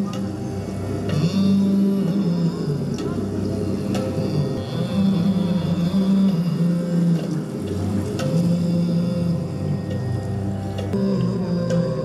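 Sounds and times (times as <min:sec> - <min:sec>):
devotional music with low held notes: 0:00.0 - 0:12.0.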